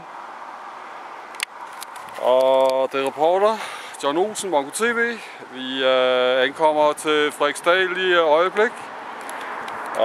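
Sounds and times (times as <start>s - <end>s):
road traffic hiss: 0.0s - 10.0s.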